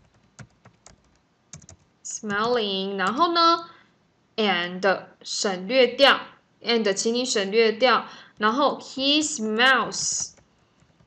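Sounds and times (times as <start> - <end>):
computer keyboard key taps: 0.1 - 1.8.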